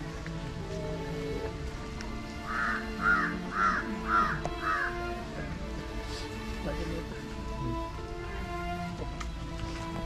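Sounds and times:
faint background music: 0:00.0 - 0:10.0
crow cawing: 0:02.4 - 0:05.2.

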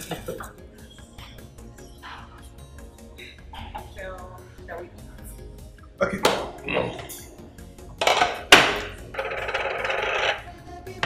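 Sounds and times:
tableware knocking on table: 0:08.0 - 0:08.9.

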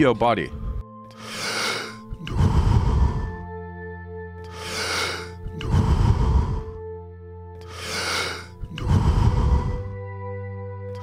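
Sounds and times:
music with held tones: 0:00.0 - 0:11.0
forceful deep breathing: 0:00.5 - 0:03.6, 0:04.4 - 0:07.0, 0:07.6 - 0:10.0.

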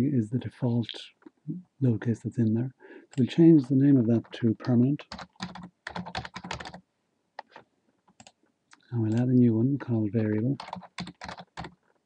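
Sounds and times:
typing on computer keyboard: 0:04.2 - 0:06.8, 0:07.4 - 0:08.4, 0:10.6 - 0:11.8.

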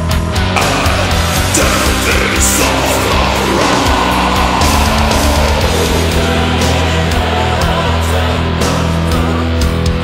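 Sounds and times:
metal band playing: 0:00.0 - 0:10.0.

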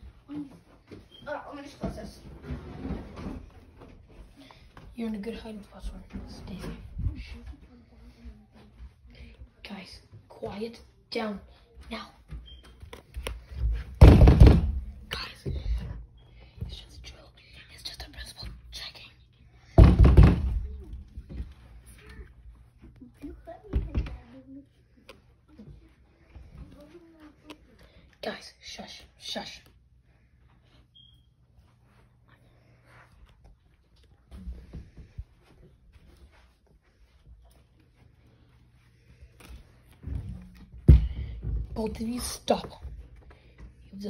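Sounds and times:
knocks and thumps on a door: 0:14.0 - 0:14.9, 0:19.8 - 0:20.8
whispering: 0:15.1 - 0:15.6, 0:16.7 - 0:19.3.

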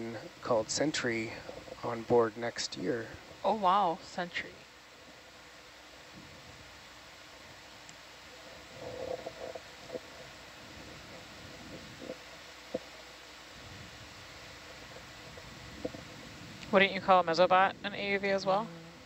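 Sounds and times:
background hiss and hum: 0:00.0 - 0:19.0.

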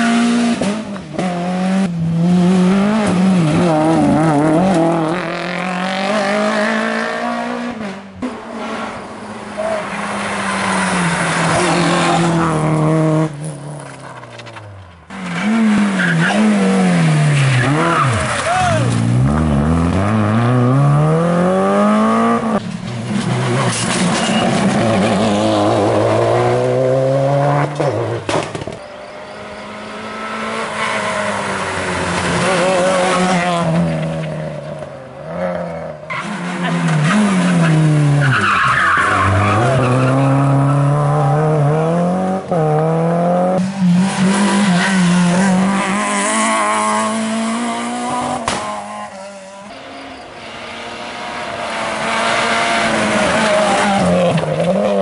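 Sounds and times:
rally cars passing at speed: 0:00.0 - 0:55.0.

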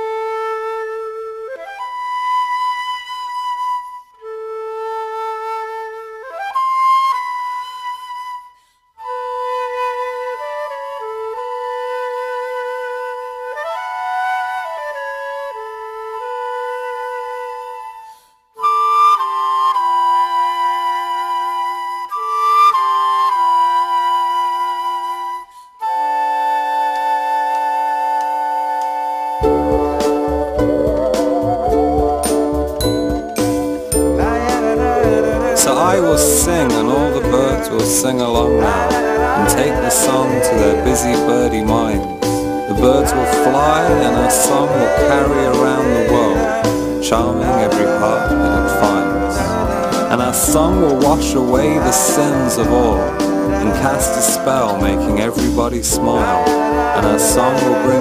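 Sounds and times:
flute-like woodwind melody: 0:00.0 - 0:58.0
lower woodwind part: 0:00.0 - 0:58.0.

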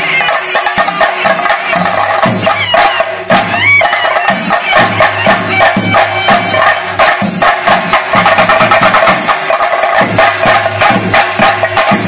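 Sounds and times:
drums beaten with sticks: 0:00.0 - 0:12.0.

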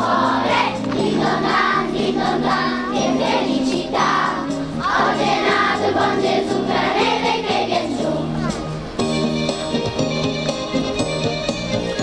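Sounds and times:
children singing in chorus: 0:00.0 - 0:08.8.

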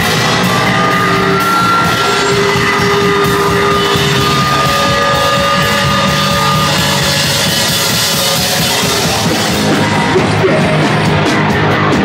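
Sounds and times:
punk band playing live: 0:00.0 - 0:12.0.

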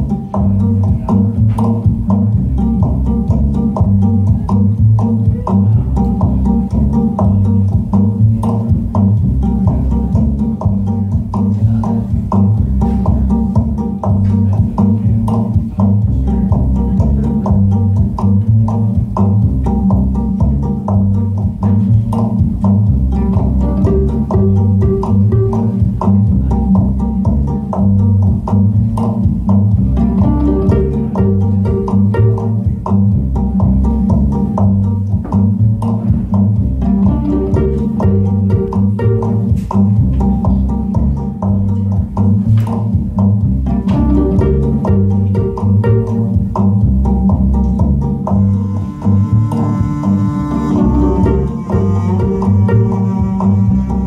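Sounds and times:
bowed string tones: 0:00.0 - 0:54.0
upright bass plucked: 0:00.0 - 0:54.0
higher string phrase: 0:36.2 - 0:39.6, 0:43.7 - 0:46.4, 0:48.5 - 0:54.0.

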